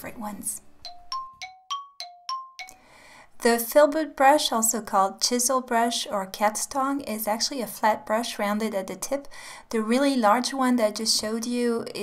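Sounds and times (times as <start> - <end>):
bell-like chime jingle: 0.8 - 2.8.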